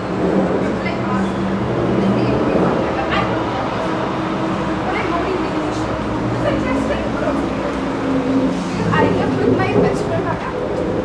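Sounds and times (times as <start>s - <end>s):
people's voices: 0.0s - 11.0s
traffic rumble: 0.0s - 11.0s.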